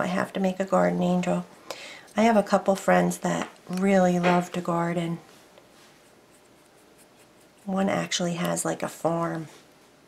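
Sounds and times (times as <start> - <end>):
paintbrush strokes on wood: 5.3 - 7.9.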